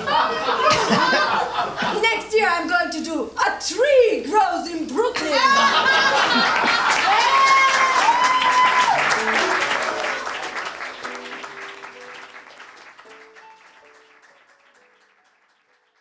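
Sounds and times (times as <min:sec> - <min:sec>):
audience applause: 0:05.7 - 0:16.0
music with held high note: 0:08.7 - 0:16.0.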